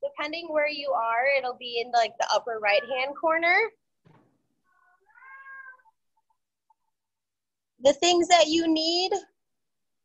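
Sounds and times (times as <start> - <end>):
cat meowing: 4.8 - 6.0.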